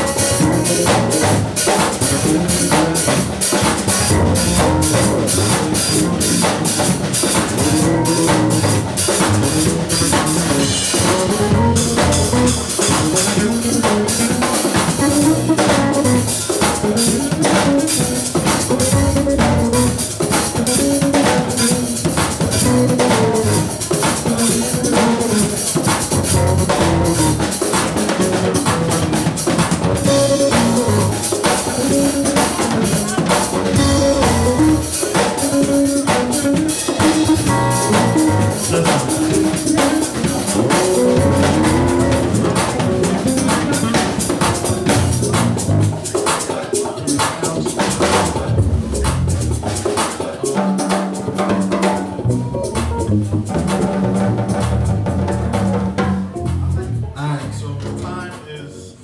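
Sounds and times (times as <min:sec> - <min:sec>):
electric bass lines: 0:00.0 - 0:21.7, 0:22.4 - 0:23.8, 0:24.5 - 0:27.5, 0:28.2 - 0:35.0, 0:35.6 - 0:44.0, 0:44.7 - 0:46.0, 0:48.3 - 0:49.7, 0:52.1 - 0:58.2
drum kits hitting: 0:00.0 - 0:46.6
keyboards: 0:00.0 - 0:59.0
keyboard synthesizer chords: 0:03.9 - 0:06.7, 0:07.6 - 0:14.1, 0:18.9 - 0:20.1, 0:29.8 - 0:35.8, 0:37.0 - 0:39.9, 0:40.6 - 0:43.9.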